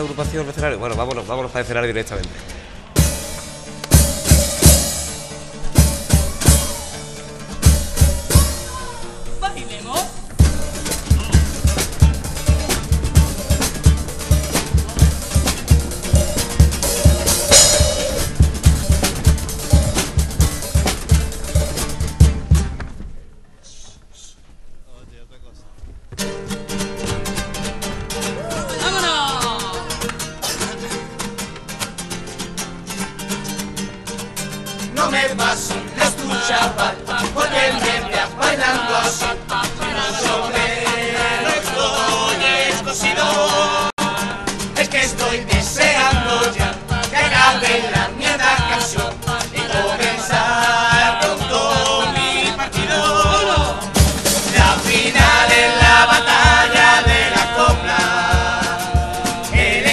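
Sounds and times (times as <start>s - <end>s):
acoustic guitar strummed rhythmically: 2.4s - 9.3s, 9.9s - 22.8s, 26.2s - 59.9s
bass drum snare and cymbal hits: 3.0s - 9.0s, 10.3s - 22.8s, 44.0s - 59.9s
person singing: 34.9s - 59.9s.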